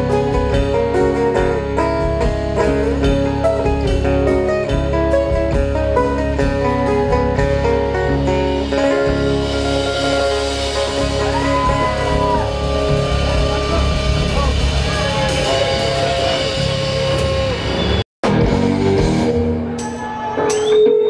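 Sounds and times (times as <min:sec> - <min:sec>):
bass guitar: 0:00.0 - 0:21.0
drum kit: 0:00.0 - 0:21.0
electric guitars: 0:00.0 - 0:21.0.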